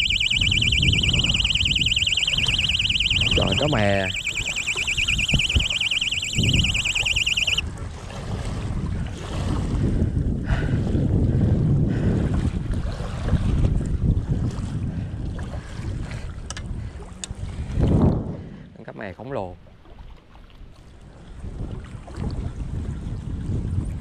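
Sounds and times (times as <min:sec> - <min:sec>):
wind buffeting microphone: 0:00.0 - 0:06.9, 0:07.7 - 0:18.8, 0:21.0 - 0:24.0
high warbling electronic alarm: 0:00.0 - 0:07.6
lake water lapping at shore: 0:07.8 - 0:10.0, 0:12.3 - 0:17.7.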